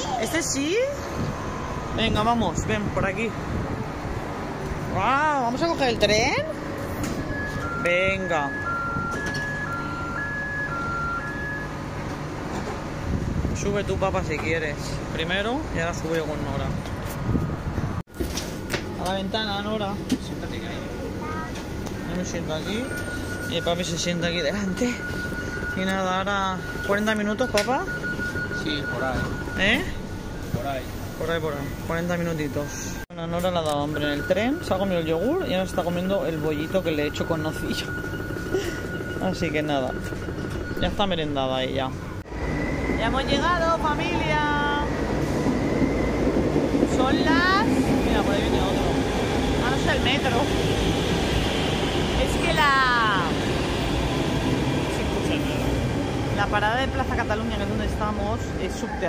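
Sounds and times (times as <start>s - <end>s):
train rumble: 0.0s - 59.0s.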